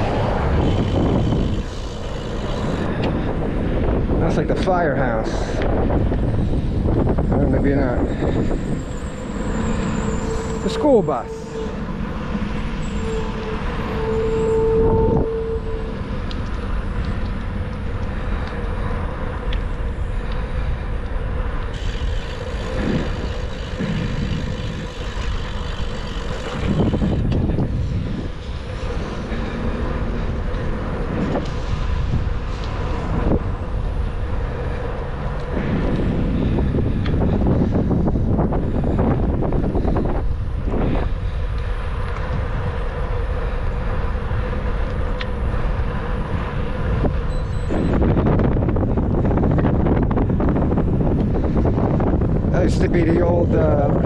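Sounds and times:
bicycle tyres rolling on asphalt: 0:00.0 - 0:54.0
motor vehicles passing: 0:00.0 - 0:54.0
wind on microphone: 0:00.0 - 0:54.0.

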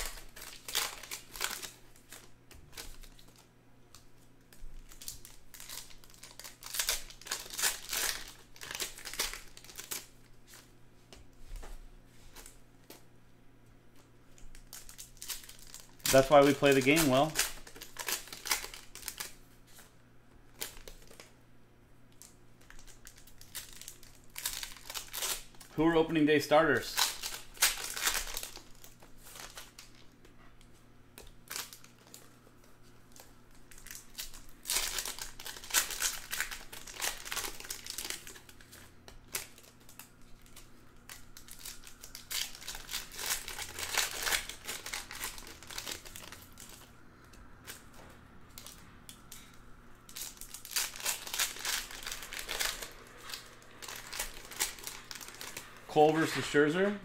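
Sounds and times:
foil packs torn and crinkled: 0:00.0 - 0:10.6, 0:14.4 - 0:19.4, 0:20.5 - 0:21.3, 0:22.2 - 0:25.7, 0:26.7 - 0:30.2, 0:31.1 - 0:32.3, 0:33.0 - 0:56.5.

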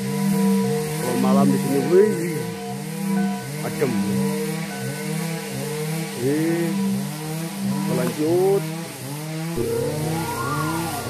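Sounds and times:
small engine revving: 0:00.0 - 0:11.0.

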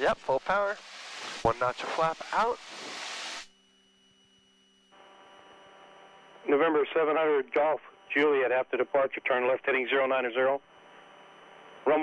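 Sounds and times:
faint electrical hum: 0:00.0 - 0:12.0.

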